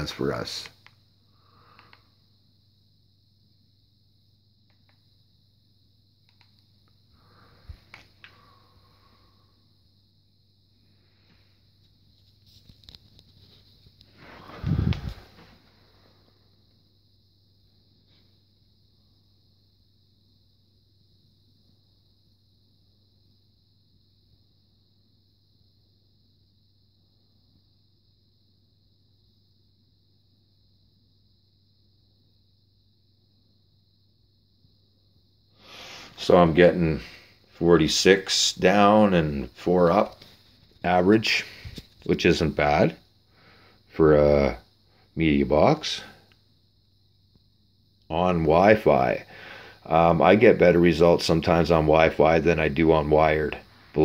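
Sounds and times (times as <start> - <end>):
faint high hiss: 0.0 - 54.0
steady low hum: 0.0 - 54.0.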